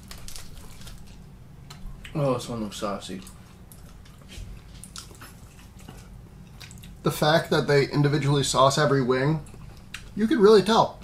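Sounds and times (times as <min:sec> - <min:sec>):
chewing and biting food: 0:00.0 - 0:02.2, 0:03.1 - 0:07.0
low steady hum: 0:00.0 - 0:11.0.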